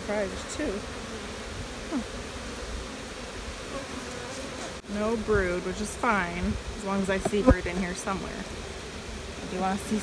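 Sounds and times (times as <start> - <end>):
honey bees buzzing: 0.0 - 10.0.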